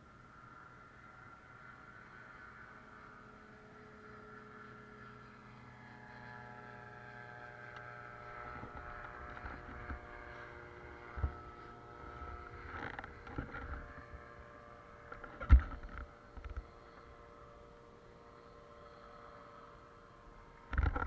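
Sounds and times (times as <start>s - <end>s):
aircraft engine idling: 0.0s - 21.0s.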